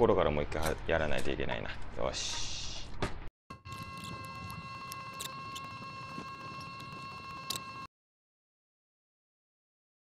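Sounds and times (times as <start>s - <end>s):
steady high-pitched tone: 3.5s - 7.9s
small clicks and scratches: 3.7s - 7.9s.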